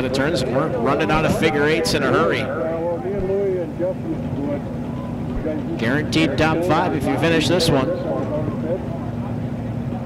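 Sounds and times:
race car engines idling: 0.0s - 10.0s.

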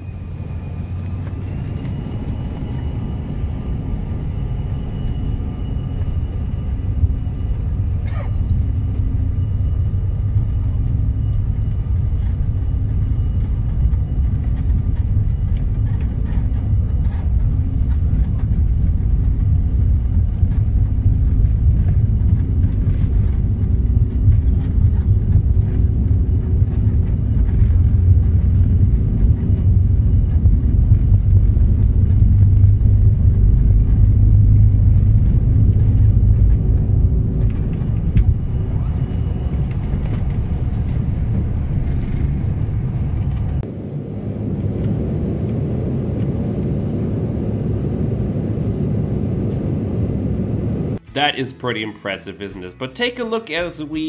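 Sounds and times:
faint steady whine: 0.0s - 52.7s
airplane engines rumbling: 0.0s - 54.0s.

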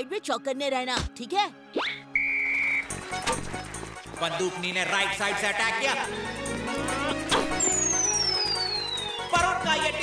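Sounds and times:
background music: 0.0s - 10.0s
referee's whistle blast: 2.2s - 2.9s.

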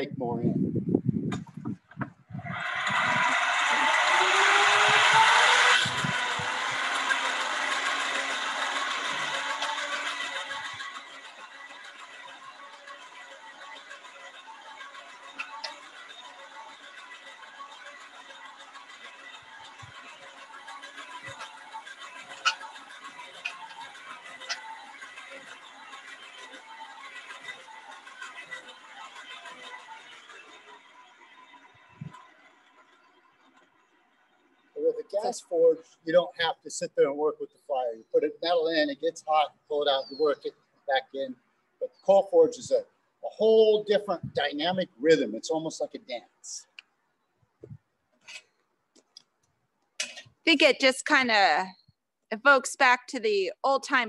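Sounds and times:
hand-cranked blower whine: 1.3s - 49.4s, 50.0s - 51.9s.

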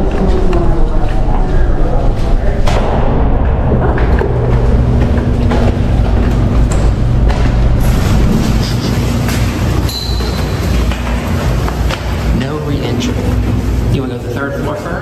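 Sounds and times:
steady low rumble: 0.0s - 15.0s
footsteps on concrete stairs: 3.9s - 12.3s.

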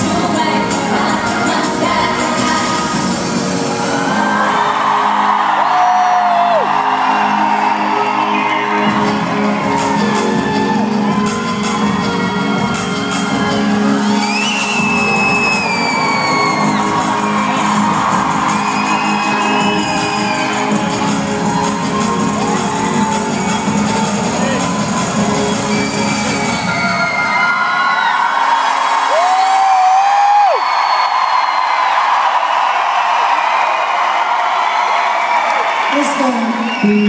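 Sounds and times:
live pop music: 0.0s - 28.1s, 35.5s - 37.0s
audience screaming and whooping: 0.0s - 37.0s
high screams or whistles: 11.3s - 17.4s, 18.4s - 20.8s, 25.4s - 31.8s, 34.8s - 37.0s.

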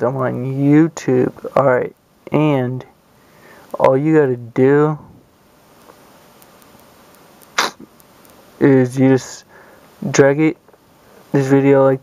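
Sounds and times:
faint room hiss: 0.0s - 12.0s
stifled sneeze breath: 7.6s - 7.9s.

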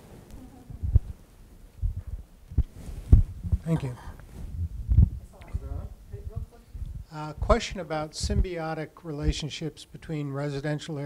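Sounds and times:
microphone handling noise: 0.0s - 8.6s, 9.2s - 9.5s
dull thumps on microphone: 1.8s - 3.7s, 4.3s - 5.2s.

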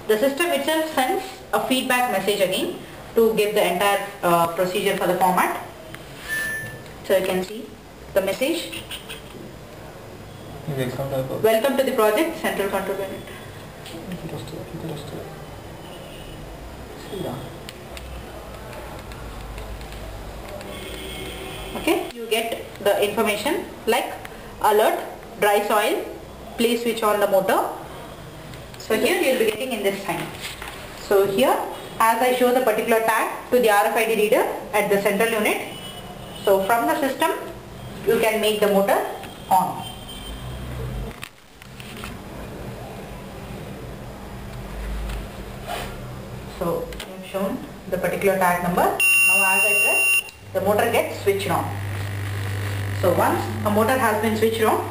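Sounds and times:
electrical mains hum: 0.0s - 54.9s
low steady hum: 46.2s - 54.9s.

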